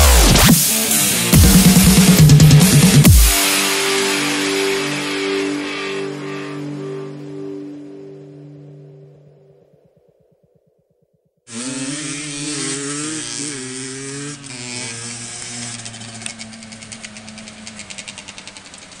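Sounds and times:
motorcycle engine revving: 0.0 - 6.5, 11.5 - 19.0.

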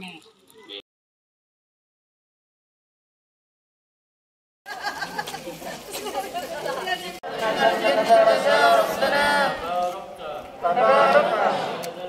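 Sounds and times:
crowd chatter: 4.7 - 12.0.

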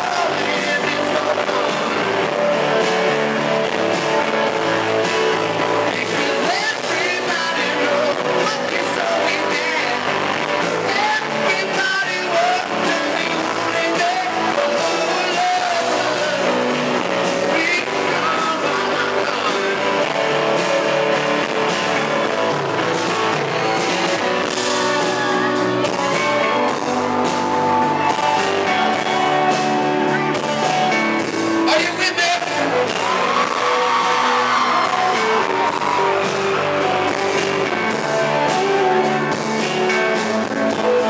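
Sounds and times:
loud live band music: 0.0 - 41.0.

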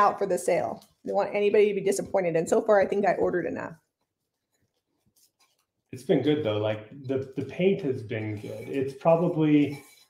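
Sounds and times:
paintbrush stroking on tin: 3.9 - 5.9, 7.4 - 10.0
person speaking: 6.0 - 10.0.

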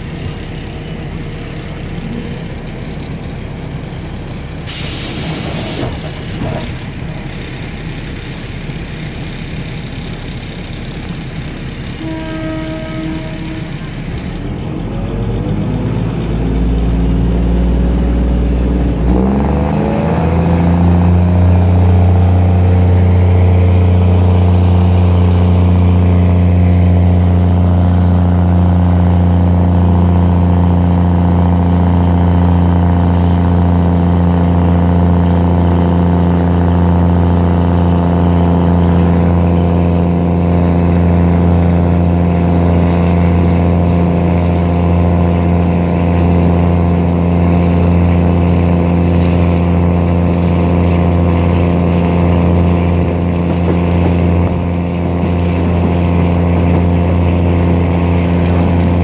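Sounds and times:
diesel train engine revving: 0.0 - 59.0
short pitched tone: 12.0 - 14.0.

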